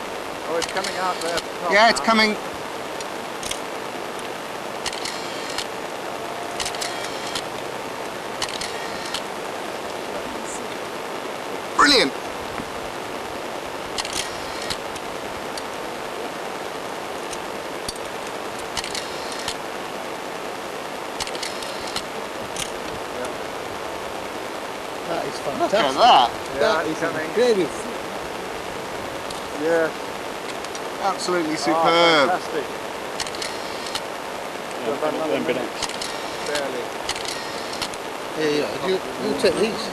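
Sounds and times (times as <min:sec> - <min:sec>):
outdoor background hiss: 0:00.0 - 0:39.9.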